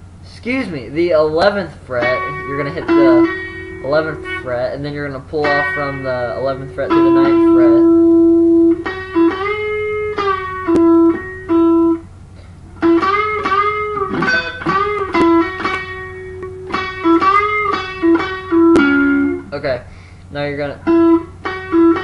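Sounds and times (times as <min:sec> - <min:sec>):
electric guitar lead lick: 0:01.8 - 0:20.2, 0:20.8 - 0:22.0.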